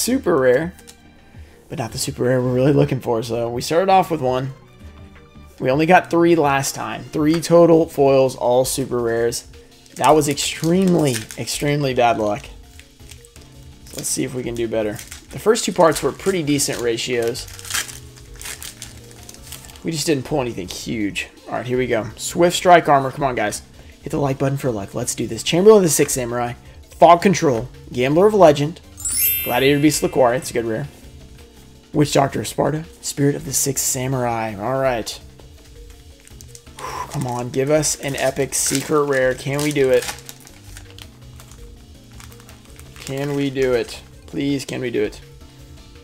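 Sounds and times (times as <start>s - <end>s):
background music: 0.0s - 46.0s
foil pack crinkling: 9.9s - 19.9s, 36.0s - 44.1s.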